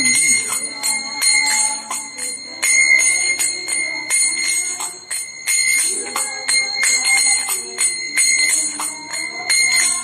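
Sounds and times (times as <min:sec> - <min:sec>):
small hand cymbals ringing: 0:00.0 - 0:10.0.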